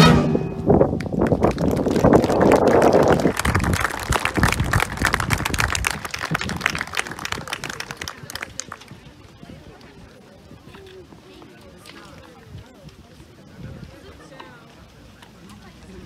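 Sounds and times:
concert band chord: 0.0s - 1.0s
audience clapping: 1.0s - 9.0s.

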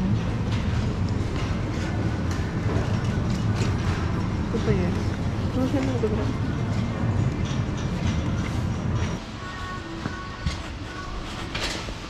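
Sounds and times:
supermarket background rumble: 0.0s - 12.0s.

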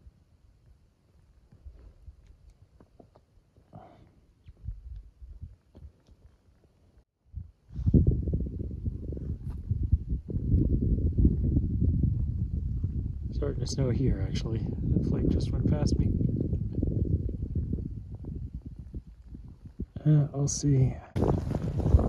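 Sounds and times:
wind buffeting microphone: 4.4s - 6.1s, 7.2s - 22.0s.

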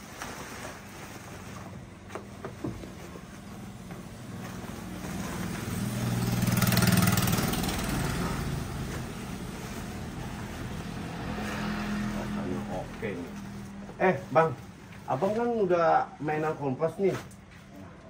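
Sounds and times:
vehicle engine passing by: 4.1s - 14.6s.

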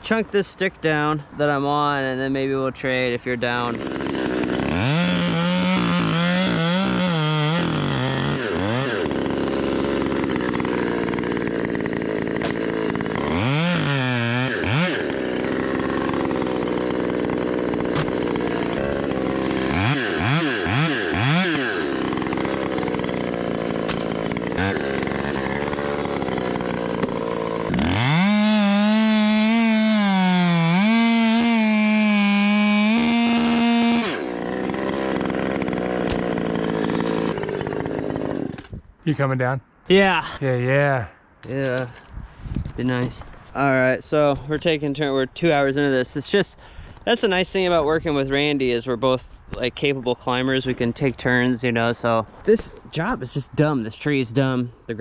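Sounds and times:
chainsaw idling and revving: 3.4s - 38.7s.

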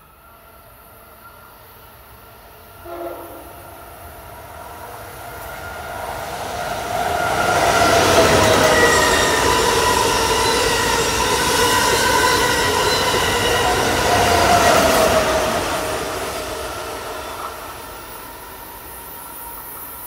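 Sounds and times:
train rushing past on rails: 0.0s - 20.0s.

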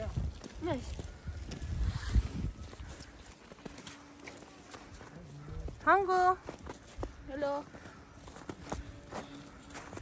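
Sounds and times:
footsteps on slushy snow: 0.0s - 10.0s.

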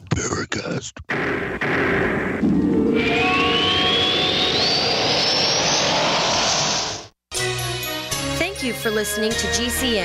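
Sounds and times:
jet-like rushing sound effect: 1.6s - 7.2s
rising whistle: 2.6s - 7.1s.

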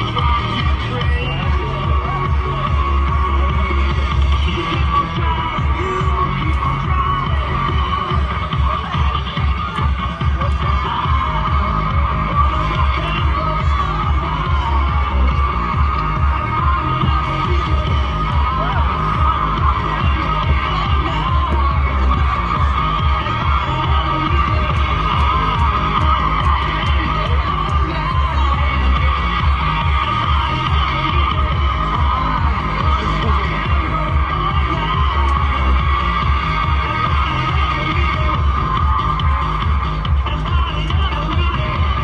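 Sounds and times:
dance music with pulsing bass: 0.0s - 42.0s.

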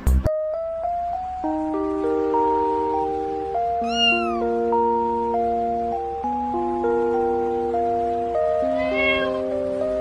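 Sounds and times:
background music of held notes: 0.0s - 10.0s
kitten meowing: 3.8s - 4.5s, 8.6s - 9.5s.

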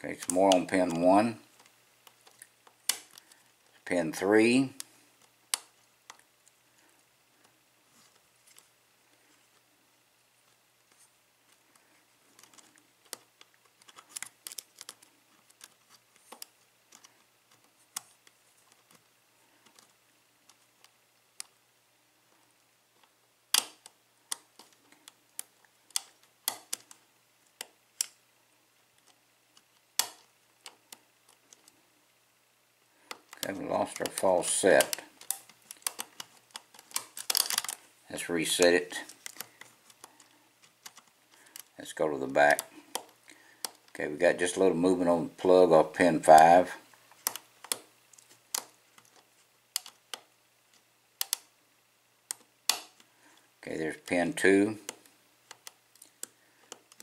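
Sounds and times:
lock pick clicking: 23.5s - 27.0s, 29.0s - 31.8s, 33.1s - 37.8s, 48.5s - 50.3s, 51.2s - 51.5s, 52.3s - 53.1s
lock pick clicking in lock: 34.8s - 37.8s.

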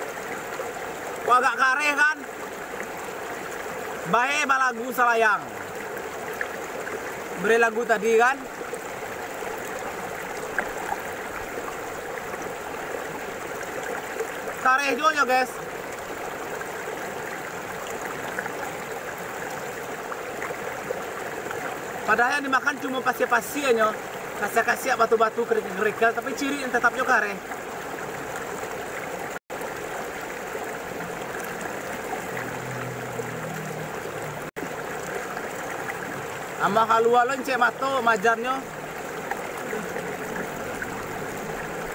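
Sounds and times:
flowing river water: 0.0s - 41.9s.

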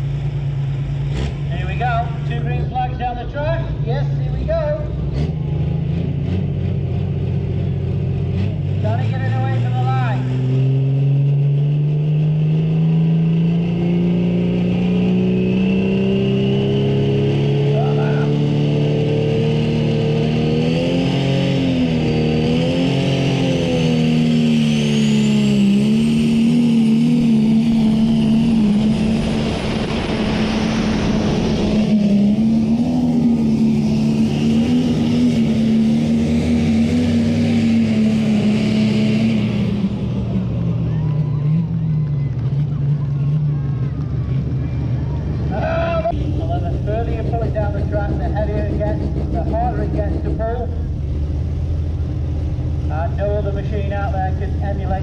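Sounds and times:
diesel engine working hard: 0.0s - 55.0s
high turbo whine: 0.0s - 55.0s.

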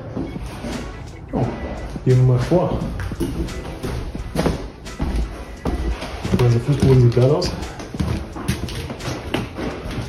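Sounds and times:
background music: 0.0s - 10.0s
footsteps on hardwood floor: 0.0s - 10.0s.

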